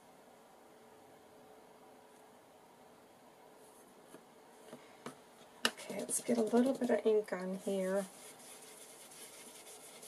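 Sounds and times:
sponge rubbing on paper: 0:05.8 - 0:10.0.

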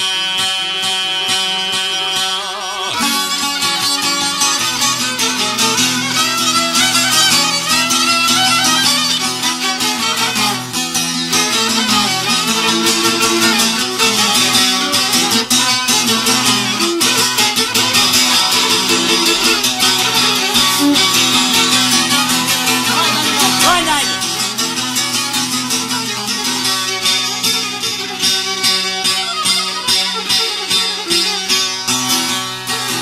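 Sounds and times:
plucked string folk music: 0:00.0 - 0:33.0.

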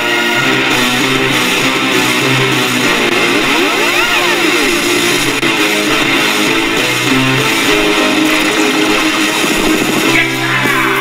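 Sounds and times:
synthesizer sweep: 0:00.0 - 0:10.2
rock band playing: 0:00.0 - 0:11.0.

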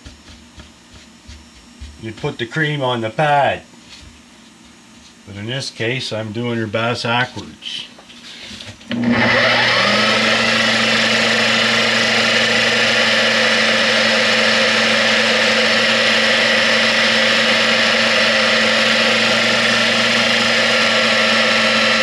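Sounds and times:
electric sander motor whining: 0:08.9 - 0:22.0.

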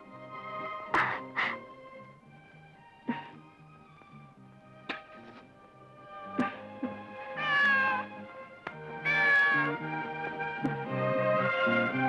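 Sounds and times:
background music: 0:00.0 - 0:12.0
cat meowing: 0:07.4 - 0:08.2, 0:08.9 - 0:09.8.

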